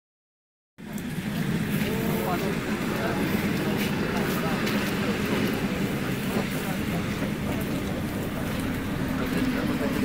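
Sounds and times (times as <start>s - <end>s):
electric train rumbling: 0.8s - 10.0s.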